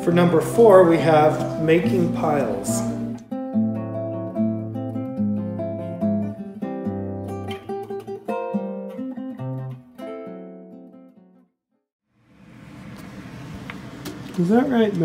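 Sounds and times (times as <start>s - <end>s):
acoustic guitar music: 0.0s - 11.6s.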